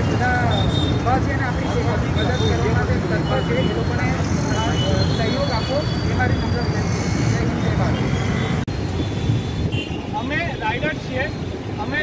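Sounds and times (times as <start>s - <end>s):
voices talking: 0.0s - 8.7s
traffic engine rumble: 0.0s - 12.0s.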